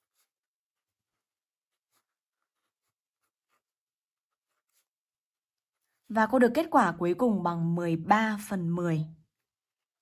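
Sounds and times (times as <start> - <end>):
pen scratching on paper: 0.0 - 6.1.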